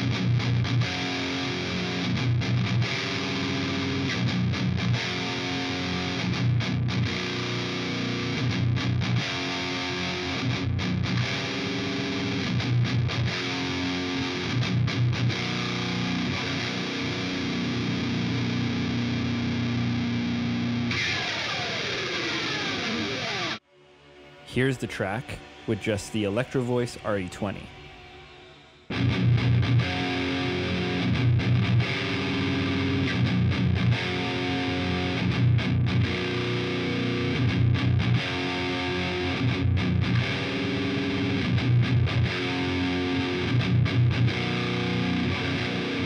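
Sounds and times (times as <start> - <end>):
distorted electric guitar riff: 0.0 - 23.6, 24.2 - 46.0.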